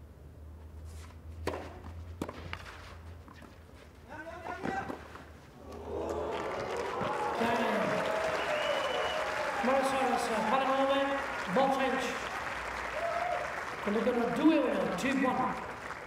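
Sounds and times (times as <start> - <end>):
rackets hitting tennis balls: 1.4 - 3.6, 4.4 - 5.8
crowd cheering and applauding: 5.6 - 16.0.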